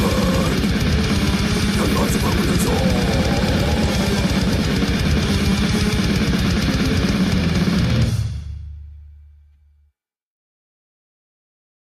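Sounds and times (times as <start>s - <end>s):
fast dense drumming: 0.0s - 8.5s
death metal song: 0.0s - 9.0s
distorted guitars: 0.0s - 9.2s.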